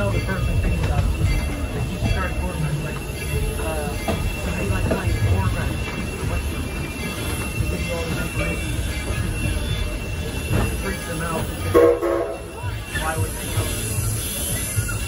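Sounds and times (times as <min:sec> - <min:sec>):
passenger voices: 0:00.0 - 0:15.0
train car rumbling on track: 0:00.0 - 0:15.0.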